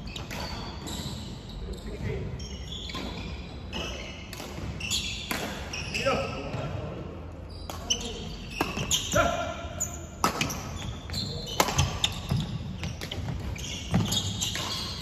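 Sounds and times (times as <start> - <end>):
shoes squeaking on wooden floor: 0.0 - 6.7, 9.8 - 15.0
racket hitting shuttlecock: 5.3 - 5.7, 10.2 - 10.7, 11.6 - 15.0.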